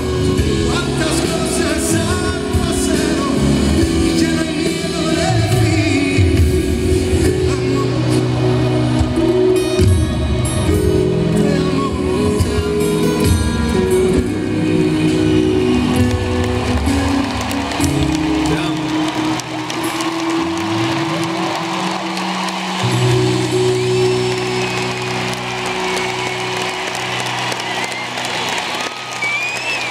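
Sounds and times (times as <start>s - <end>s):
keyboard and bass chords: 0.0s - 28.6s
crowd cheering: 0.0s - 29.9s
crowd whistles: 15.1s - 29.9s.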